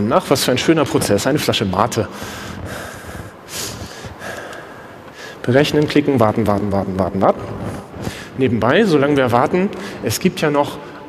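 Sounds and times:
low hiss of room noise: 0.0s - 11.0s
person breathing out: 2.2s - 5.4s.

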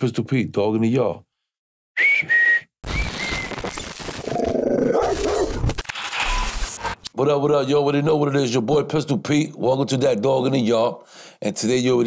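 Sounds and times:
short whistle: 2.0s - 3.8s.

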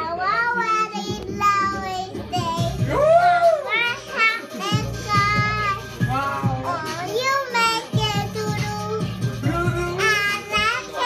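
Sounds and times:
child singing: 0.0s - 3.0s, 3.6s - 11.0s.

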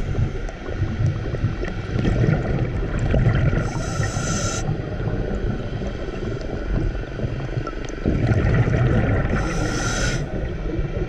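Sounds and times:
rumble of exhaled bubbles: 0.0s - 11.0s
regulator inhalation hiss: 3.6s - 4.7s, 9.3s - 10.3s.

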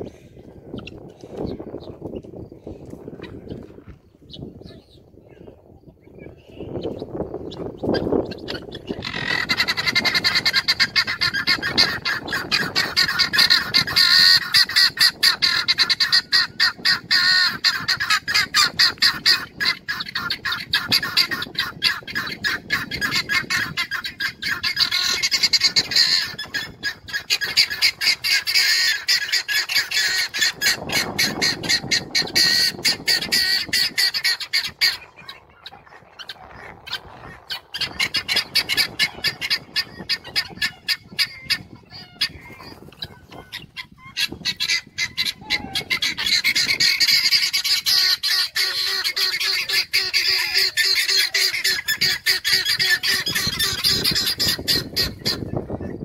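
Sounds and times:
guineafowl chattering calls: 0.1s - 56.0s.

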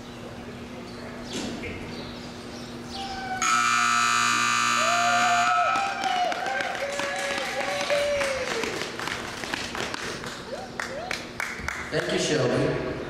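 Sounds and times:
crowd calling out: 3.0s - 8.6s
arena time buzzer: 3.4s - 6.1s
scattered clapping: 5.7s - 12.2s.

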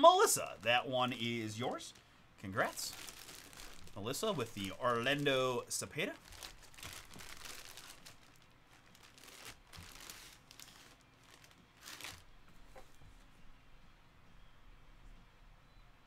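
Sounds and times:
plastic bag crinkling: 0.2s - 12.9s.

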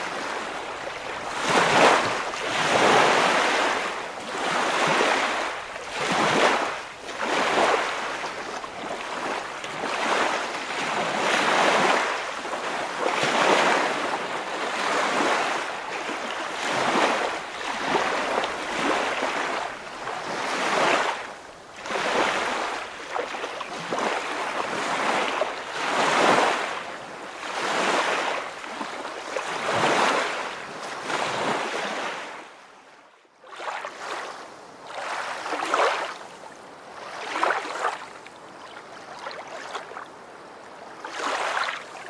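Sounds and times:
river water rushing and sloshing: 0.0s - 42.0s.

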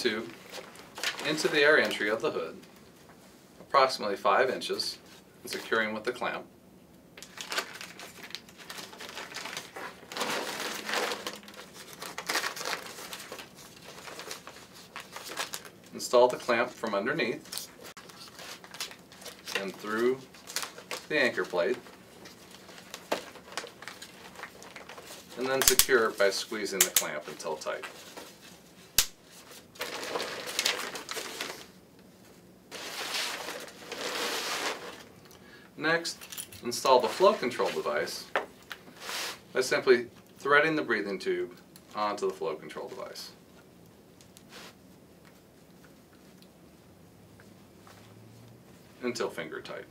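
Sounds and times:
stiff coated fabric crinkling: 7.3s - 16.7s, 17.3s - 31.7s.

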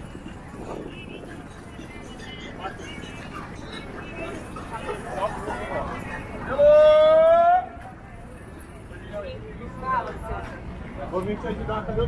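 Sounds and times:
wind on microphone: 0.0s - 4.5s
chatter of passers-by: 0.0s - 12.0s
passing traffic rumble: 0.0s - 12.0s.

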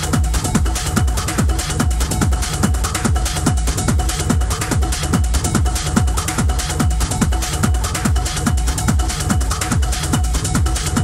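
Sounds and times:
fast hi-hats: 0.0s - 11.0s
kick drum: 0.0s - 11.0s.

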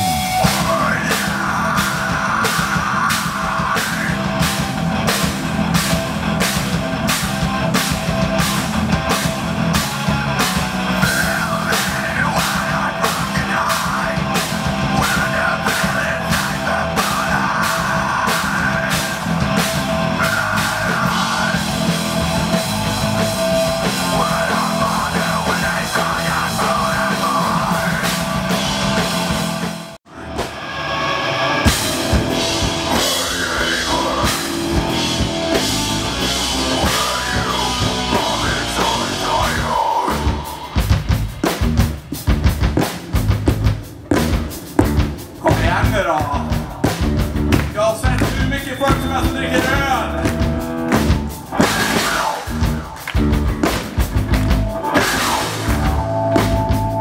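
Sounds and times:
heavy rock band playing loud: 0.0s - 57.0s.

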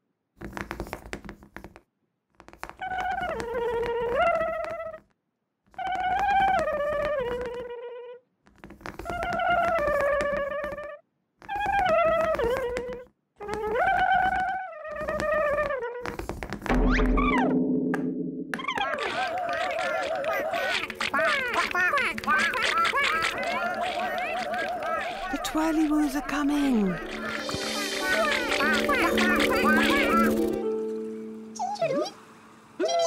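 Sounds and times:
wordless melodic phrase: 25.7s - 31.6s
falling-pitch sound effect: 27.0s - 32.3s.

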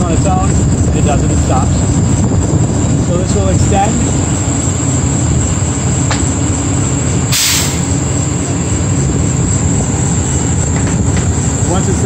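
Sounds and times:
low mechanical rumble: 0.0s - 12.0s
short sharp air hiss: 7.3s - 7.9s.

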